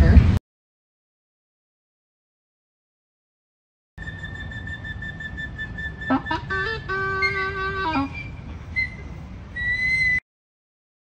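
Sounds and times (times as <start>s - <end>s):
low outdoor rumble: 0.0s - 0.4s, 4.0s - 10.2s
long high flute note: 4.0s - 10.2s.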